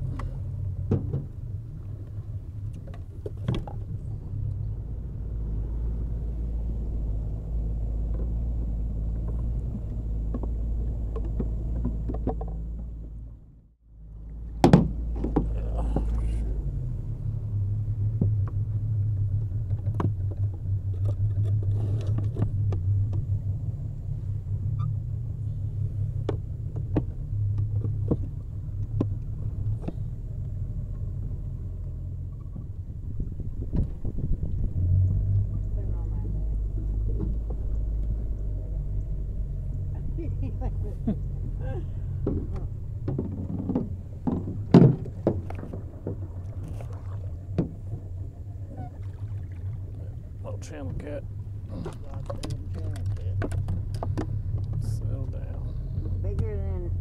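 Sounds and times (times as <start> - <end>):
boat motor rumbling: 0.0 - 57.0
knocks in an aluminum boat: 0.2 - 1.5, 9.1 - 13.0, 14.5 - 16.3, 26.2 - 30.1, 33.6 - 34.4, 42.2 - 48.2, 51.7 - 55.0.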